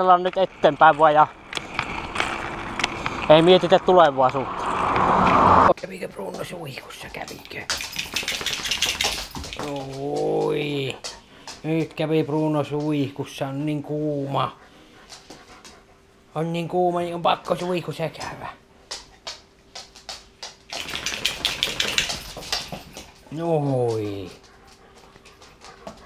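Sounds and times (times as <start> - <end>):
dog rustling and clicking on floor: 5.7 - 13.8, 14.8 - 15.9, 17.3 - 26.0.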